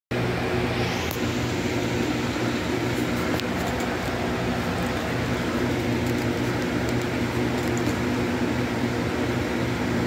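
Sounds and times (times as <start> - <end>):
low machine hum: 0.1 - 10.0.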